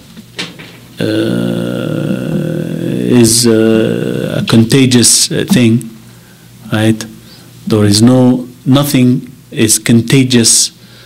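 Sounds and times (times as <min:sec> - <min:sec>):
man drawing out a hesitation sound: 0:01.0 - 0:06.1
man breathing: 0:06.0 - 0:06.6, 0:07.2 - 0:07.6, 0:10.8 - 0:11.0.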